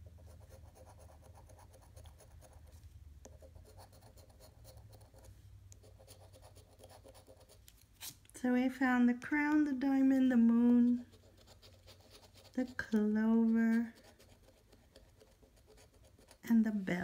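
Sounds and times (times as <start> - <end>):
coin scratching lottery ticket: 10.7 - 16.6.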